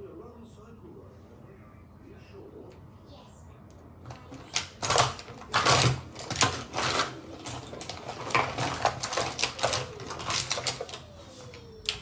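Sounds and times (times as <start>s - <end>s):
small items clicking together: 4.1s - 11.1s.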